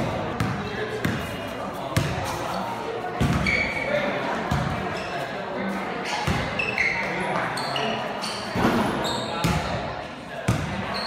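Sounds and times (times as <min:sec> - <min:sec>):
basketball bouncing on gym floor: 0:00.3 - 0:01.3, 0:03.2 - 0:03.6.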